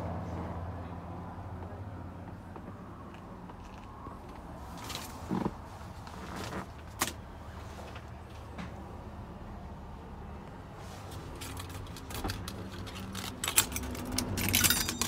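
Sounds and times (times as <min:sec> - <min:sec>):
faint low hum in vehicle cab: 0:00.0 - 0:15.0
soft clicks and rustles of handling: 0:01.6 - 0:08.8, 0:10.4 - 0:15.0.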